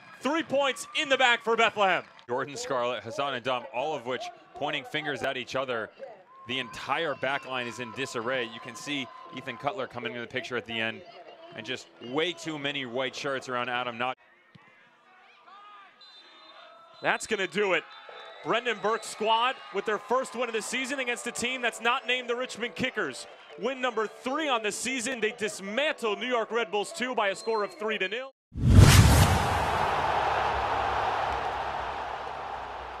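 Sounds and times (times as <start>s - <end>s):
sound effect hit with noisy tail: 28.6s - 30.7s.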